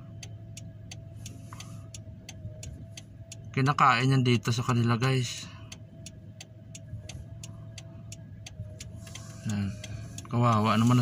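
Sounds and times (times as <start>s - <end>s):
car engine low hum: 0.0s - 11.0s
thin steady whine: 0.0s - 11.0s
light ticks: 0.1s - 11.0s.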